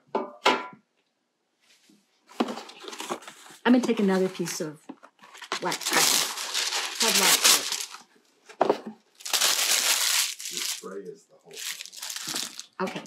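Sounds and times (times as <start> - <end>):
wax paper crinkling: 5.2 - 8.0, 9.2 - 10.9, 11.5 - 13.0.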